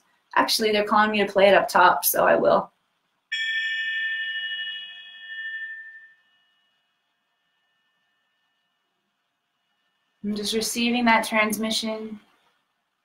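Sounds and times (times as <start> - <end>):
metal triangle ringing: 3.3 - 8.6.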